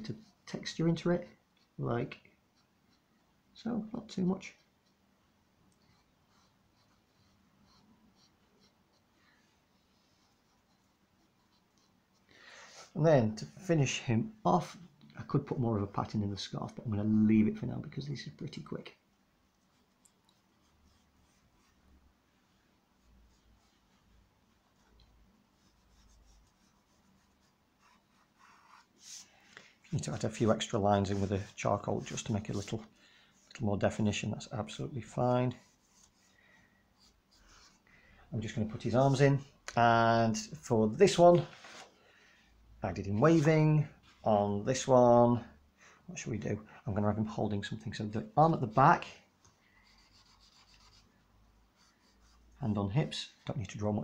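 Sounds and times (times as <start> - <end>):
drawing stick scratching paper: 5.9 - 12.3, 23.0 - 29.3, 30.0 - 32.9, 49.8 - 52.6.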